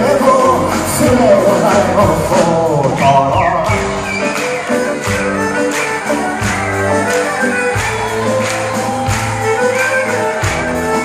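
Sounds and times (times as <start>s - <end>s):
double bass: 0.0s - 4.4s
steady drum beat: 0.0s - 11.0s.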